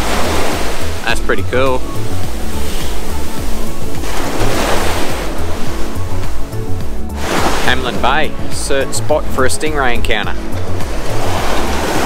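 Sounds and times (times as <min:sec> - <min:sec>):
background music with bass line: 0:00.0 - 0:12.0
surf washing up on beach: 0:00.0 - 0:12.0.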